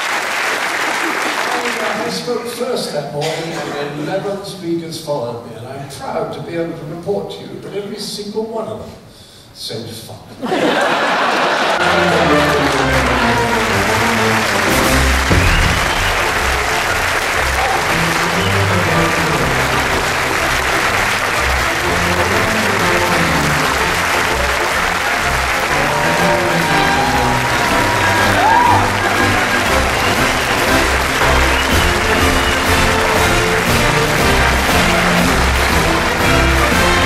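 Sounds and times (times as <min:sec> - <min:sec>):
audience applauding: 0:00.0 - 0:02.5, 0:10.6 - 0:37.0
music: 0:11.8 - 0:37.0.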